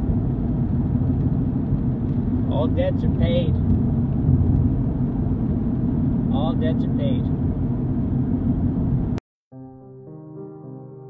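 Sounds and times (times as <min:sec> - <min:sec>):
road and engine rumble in cab: 0:00.0 - 0:09.2.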